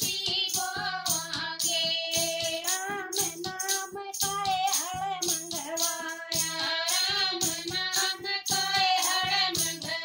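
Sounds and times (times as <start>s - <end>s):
hand drum beat: 0.0s - 10.0s
women singing together: 0.0s - 10.0s
hand clappers jingling: 2.2s - 9.9s.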